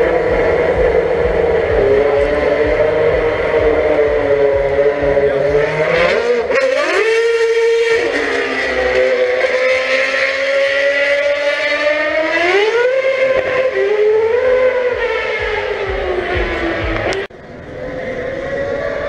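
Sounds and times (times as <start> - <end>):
racing car engine revving: 0.0 - 19.0.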